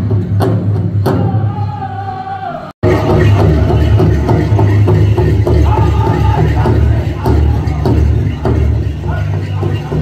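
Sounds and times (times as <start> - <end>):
large drum beating: 0.0 - 1.8, 2.8 - 10.0.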